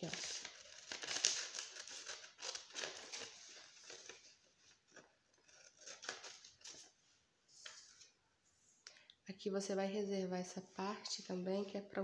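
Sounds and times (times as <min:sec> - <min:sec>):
paper rustling: 0:00.0 - 0:08.2
scissors snipping paper: 0:04.9 - 0:06.6.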